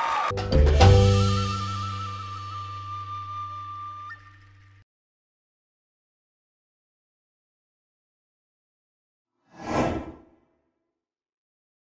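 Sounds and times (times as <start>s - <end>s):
whoosh sound effect: 9.5s - 10.3s.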